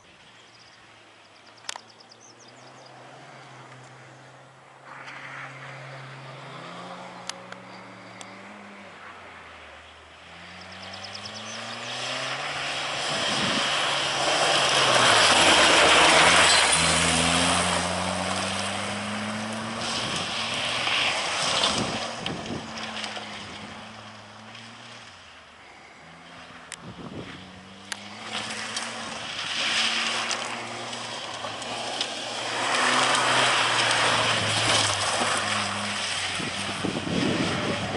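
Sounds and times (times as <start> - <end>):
tyres on gravel: 4.9 - 37.9
race car engine revving: 10.2 - 25.1, 26.0 - 37.9.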